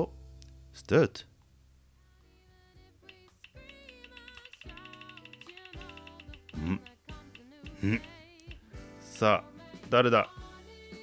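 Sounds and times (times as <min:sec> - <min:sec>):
background music: 0:00.0 - 0:11.0
roulette wheel ticking: 0:03.1 - 0:08.6.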